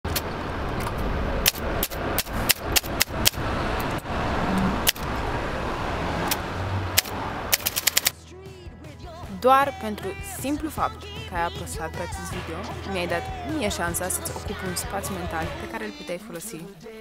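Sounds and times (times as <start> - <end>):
typewriter keys clacking: 7.5 - 8.1.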